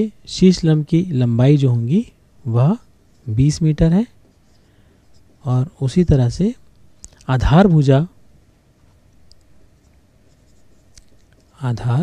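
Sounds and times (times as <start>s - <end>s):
handwriting scratching: 9.8s - 11.6s.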